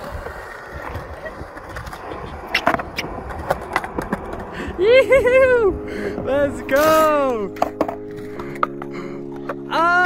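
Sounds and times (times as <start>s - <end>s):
skateboard clacks: 0.0s - 4.5s
skateboard wheels rolling on concrete: 0.0s - 10.0s.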